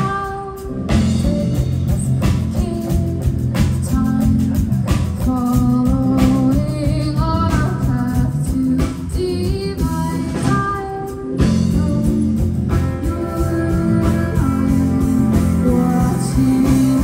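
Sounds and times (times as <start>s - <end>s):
bass guitar: 0.0s - 17.0s
electric guitar: 0.0s - 17.0s
woman singing: 0.0s - 17.0s.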